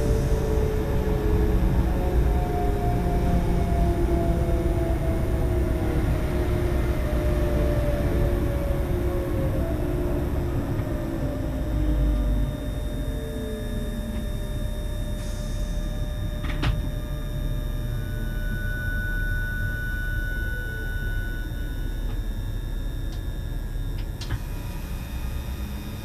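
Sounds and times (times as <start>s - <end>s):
train wheels rumbling on track: 0.0s - 12.6s.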